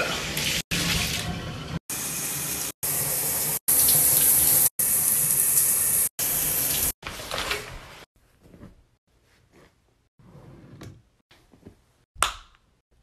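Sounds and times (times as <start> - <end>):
water running from bathtub tap: 0.0 - 7.0.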